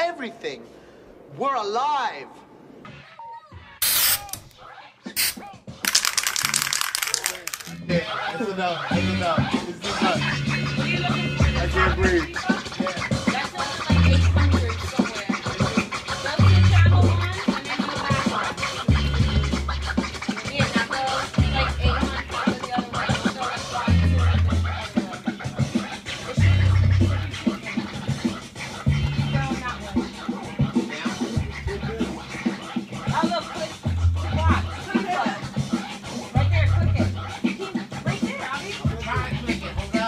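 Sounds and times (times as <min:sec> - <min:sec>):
turntable record scratching: 0:02.6 - 0:40.0.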